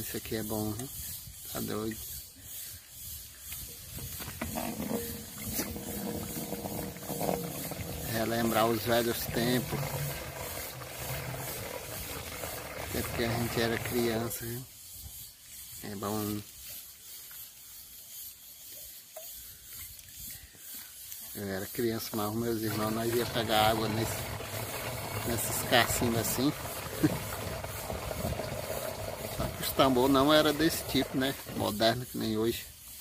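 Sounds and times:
water pouring into jug: 4.3 - 14.5, 22.1 - 32.2.

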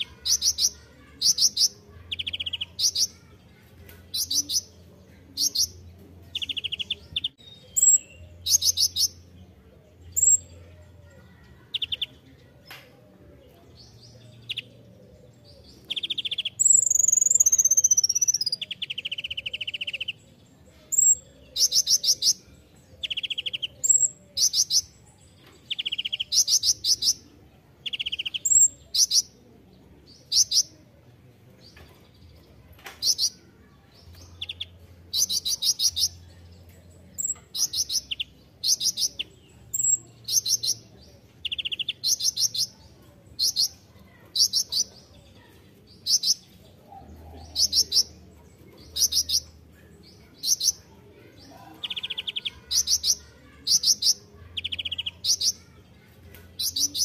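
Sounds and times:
lower bird trill: 14.4 - 20.3
sunbird singing high trills: 15.9 - 20.2.

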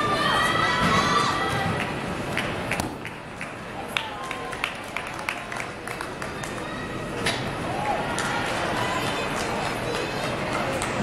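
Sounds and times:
crowd noise: 0.0 - 11.0.

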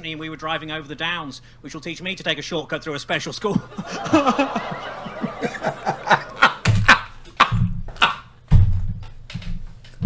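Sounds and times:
people laughing: 3.4 - 7.5.

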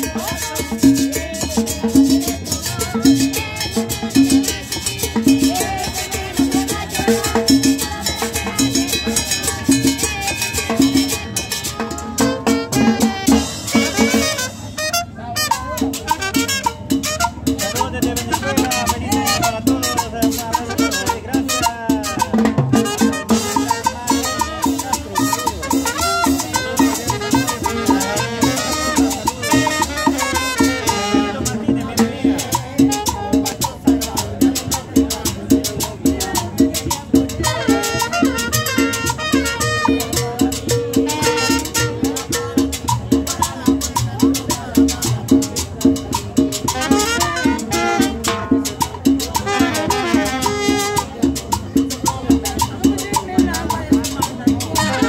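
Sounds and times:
trumpet: 0.0 - 34.2, 36.2 - 43.5, 46.1 - 51.6, 54.0 - 55.0
latin dance band: 0.0 - 55.0
upright bass: 0.0 - 55.0.

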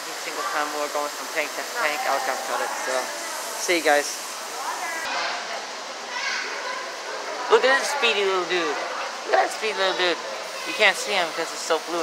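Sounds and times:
children's voices: 0.0 - 3.6, 4.4 - 12.0
background chatter: 0.0 - 12.0.

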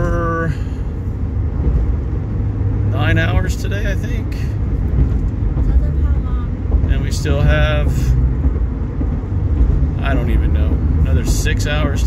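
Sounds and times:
truck road and engine rumble: 0.0 - 12.0.

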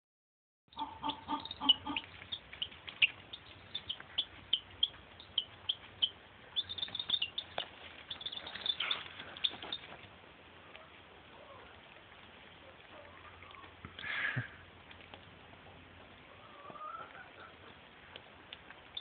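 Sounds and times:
baby chicks peeping: 0.7 - 14.2, 14.8 - 19.0.

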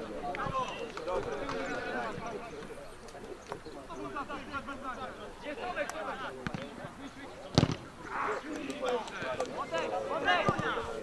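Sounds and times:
voices calling and talking: 0.0 - 11.0.

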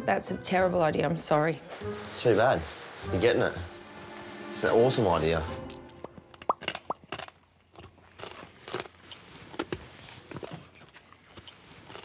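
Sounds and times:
person chewing crunchy food: 6.1 - 12.0.

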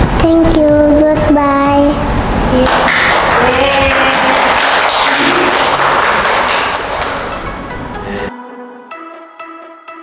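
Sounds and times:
group clapping in applause: 2.6 - 7.6
music playing: 5.1 - 10.0.

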